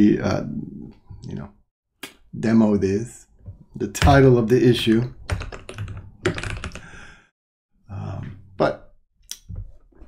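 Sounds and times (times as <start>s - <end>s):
typing on computer keyboard: 5.3s - 6.9s.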